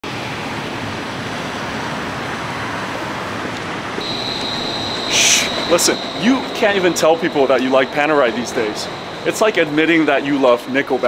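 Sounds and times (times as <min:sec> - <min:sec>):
city street traffic: 0:00.0 - 0:11.0.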